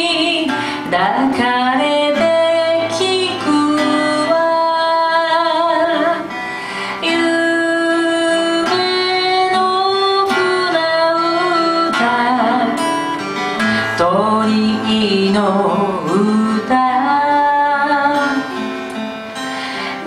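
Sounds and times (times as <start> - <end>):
woman singing long held notes: 0.0 - 12.8, 13.8 - 18.6
strummed acoustic guitar: 0.0 - 20.0.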